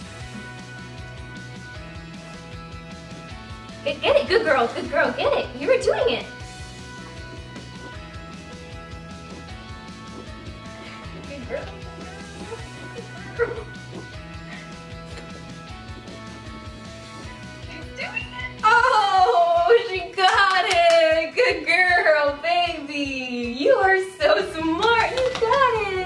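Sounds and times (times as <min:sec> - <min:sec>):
background music: 0:00.0 - 0:26.0.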